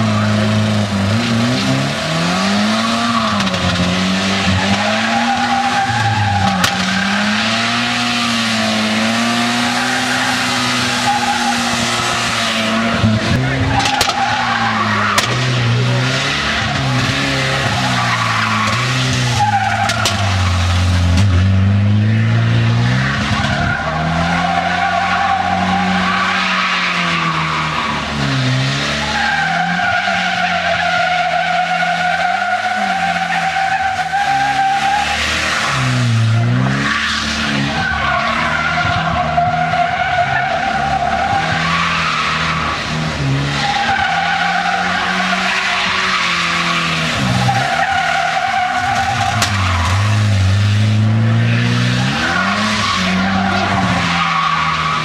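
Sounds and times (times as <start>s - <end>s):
car engine revving: 0.0s - 55.0s
tyres squealing: 0.1s - 20.8s, 43.6s - 50.5s.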